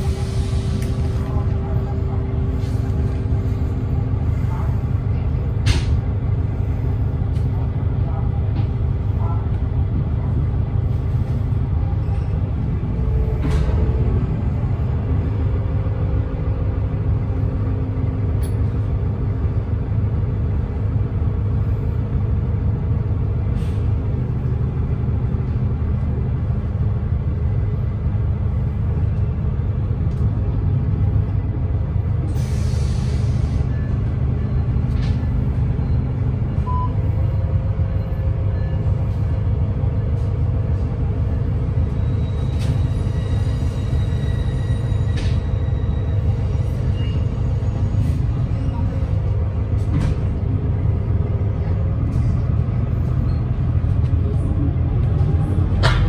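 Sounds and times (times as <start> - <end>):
air brakes hissing: 0.0 - 1.2, 23.5 - 24.0, 32.3 - 34.1
bus engine low rumble: 0.0 - 56.0.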